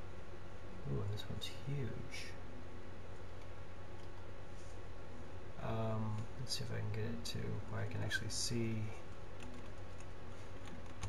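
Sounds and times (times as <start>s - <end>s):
steady low hum: 0.0s - 11.0s
keyboard typing: 9.4s - 11.0s.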